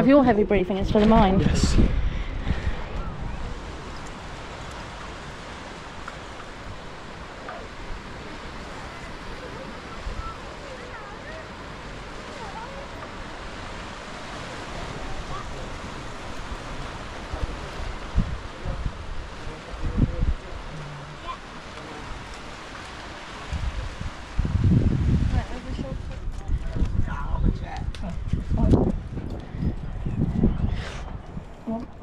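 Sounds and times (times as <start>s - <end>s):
sea surf: 0.0s - 27.0s
wind on microphone: 0.0s - 32.0s.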